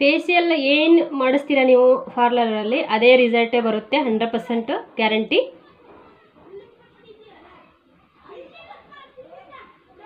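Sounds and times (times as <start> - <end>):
children talking and playing: 0.0 - 10.0.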